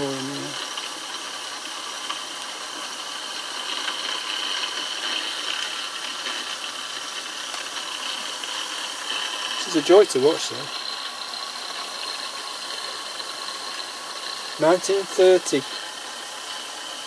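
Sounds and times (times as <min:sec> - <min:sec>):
steam turbine hissing and whining: 0:00.0 - 0:17.0.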